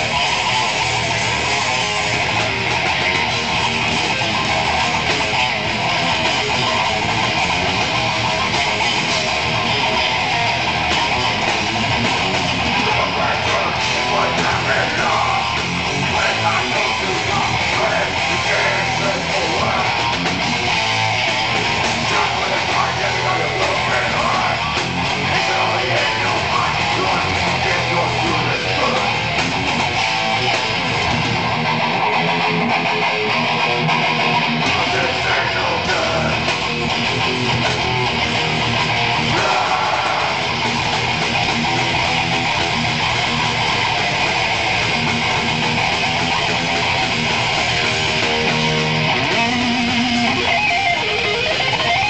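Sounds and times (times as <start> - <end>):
bass: 0.0 - 52.0
electric guitar: 0.0 - 52.0
live metal band playing: 0.0 - 52.0.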